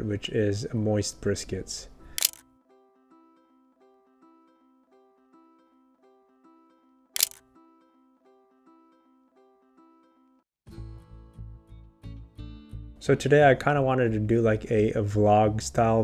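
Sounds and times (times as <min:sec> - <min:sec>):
camera shutter click: 0:02.2 - 0:02.4, 0:07.2 - 0:07.4
music with guitar and bass: 0:07.4 - 0:16.0.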